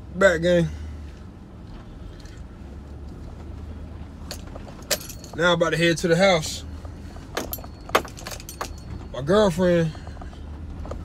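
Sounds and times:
car engine humming: 0.0 - 11.0
keys jangling: 4.3 - 5.4, 7.4 - 9.1.

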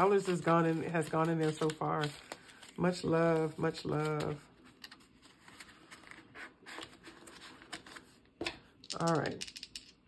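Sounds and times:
paper bills rustling: 0.0 - 8.1.

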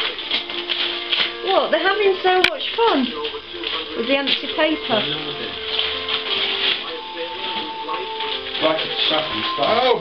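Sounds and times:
background music with held notes: 0.0 - 10.0
paper rustling and crinkling: 0.0 - 10.0.

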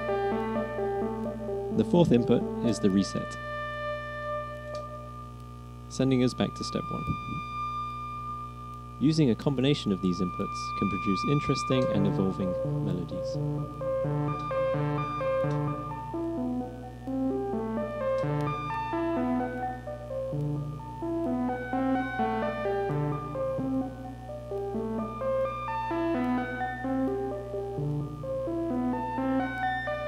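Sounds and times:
synthesizer melody: 0.0 - 5.3, 5.9 - 30.0
steady low tone: 0.0 - 30.0.

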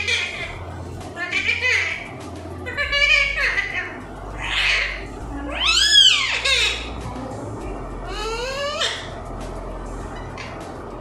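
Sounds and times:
parakeet squawking and calling: 0.0 - 7.2, 7.9 - 9.3, 10.0 - 10.8.

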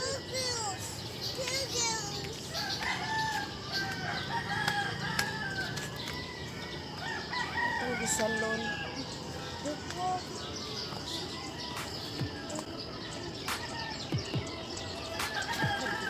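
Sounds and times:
rooster crowing: 2.8 - 9.2.

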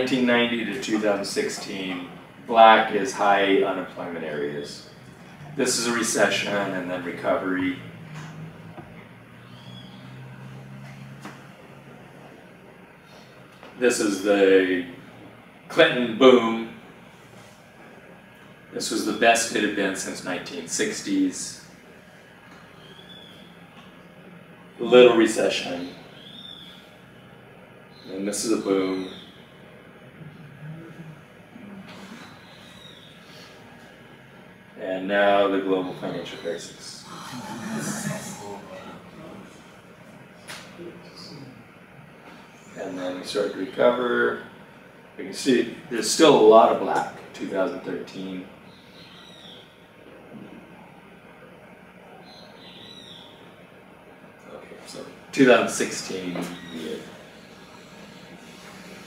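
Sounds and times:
low background hiss: 0.0 - 12.8, 13.6 - 49.6
faint murmurs: 0.0 - 49.2, 53.4 - 59.0
steady low hum: 0.0 - 59.0.

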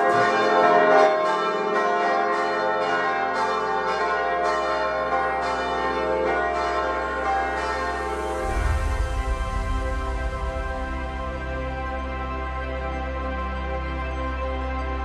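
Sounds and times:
church bells pealing: 0.0 - 15.0
low rumble: 7.6 - 13.7.

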